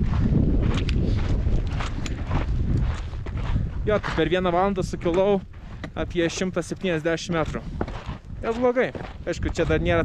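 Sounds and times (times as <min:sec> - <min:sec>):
footsteps crunching on scree: 0:00.0 - 0:10.0
wind buffeting microphone: 0:00.0 - 0:10.0.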